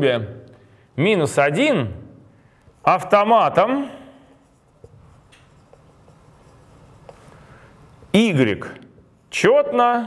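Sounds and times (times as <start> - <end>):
marker writing on whiteboard: 4.3 - 7.3.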